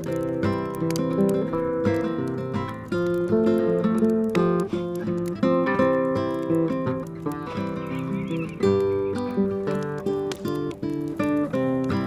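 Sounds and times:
fingerpicked classical guitar: 0.0 - 12.0.

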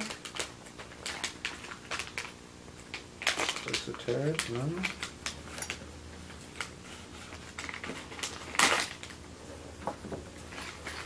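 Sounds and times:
plastic foil packet crackling: 0.0 - 9.3.

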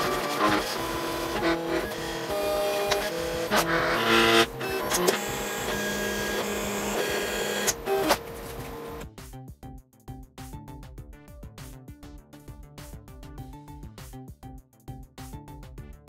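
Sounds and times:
cutting machine motors whining: 0.0 - 9.0.

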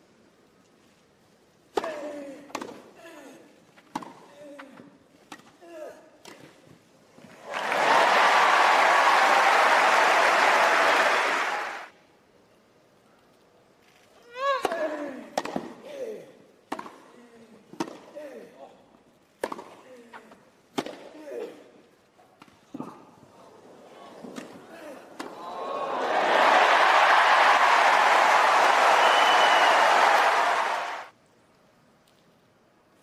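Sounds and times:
crowd applause and cheering: 7.4 - 11.9, 25.3 - 31.1
racket striking tennis ball: 16.7 - 17.0, 19.4 - 19.8.

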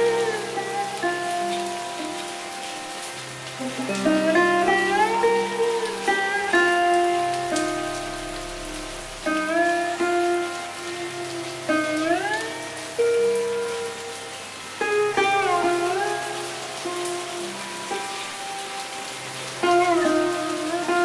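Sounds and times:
rain hissing: 0.0 - 21.0
sitar plucked notes: 0.0 - 21.0.

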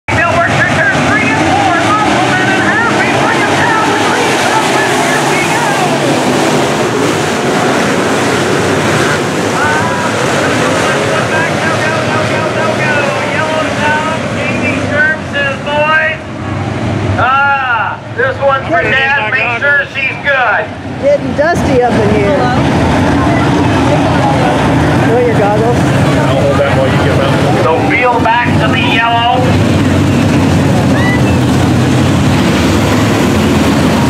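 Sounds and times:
race car engines revving: 0.1 - 34.0.

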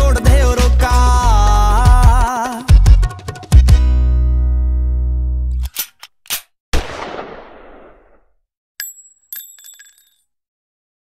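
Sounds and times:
high metallic bell ding: 8.8 - 10.2.

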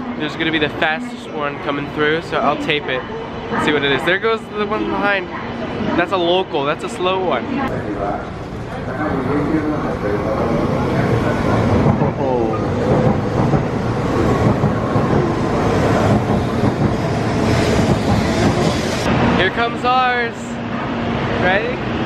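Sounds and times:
high-speed train rushing past: 0.0 - 22.0.

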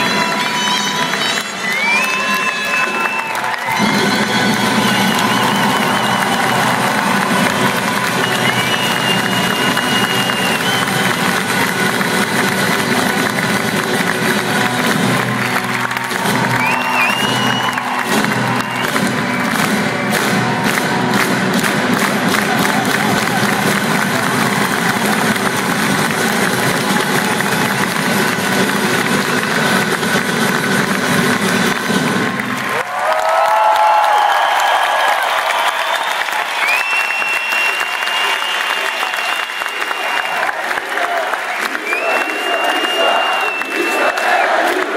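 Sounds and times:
audience clapping along: 0.0 - 44.9
crowd cheering and applauding: 0.0 - 44.9
folk band playing: 3.7 - 32.3.

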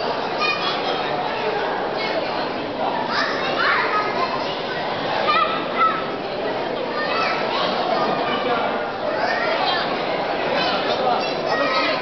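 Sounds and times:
children calling out: 0.0 - 2.2, 3.0 - 6.2, 6.9 - 12.0
crowd talking in reverberant hall: 0.0 - 12.0.

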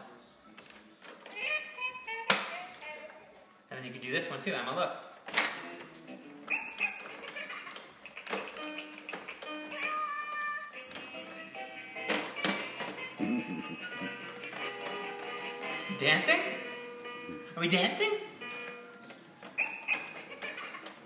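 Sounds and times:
electronic toy playing a tune: 1.4 - 3.1.

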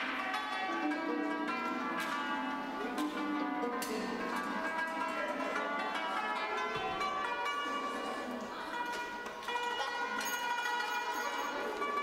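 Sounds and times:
zither played slowly: 0.0 - 12.0.

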